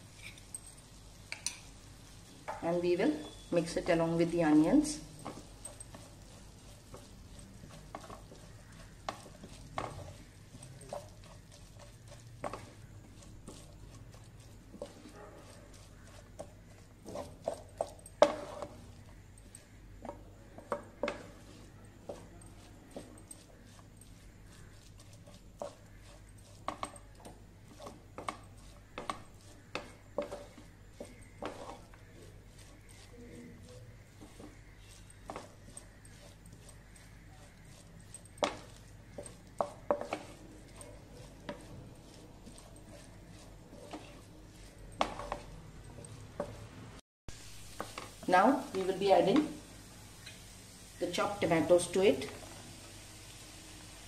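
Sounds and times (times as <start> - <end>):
wooden spatula stirring onions in pan: 0.0 - 54.0
spatula knocking and scraping pan: 2.5 - 46.8, 47.7 - 49.7.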